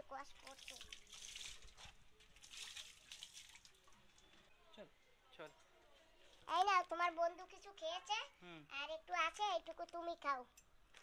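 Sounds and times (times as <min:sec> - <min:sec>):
water splashing: 0:00.4 - 0:03.9.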